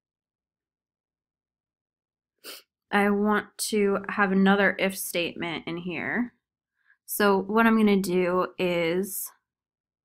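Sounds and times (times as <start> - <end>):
woman speaking: 2.9 - 6.3, 7.1 - 9.3.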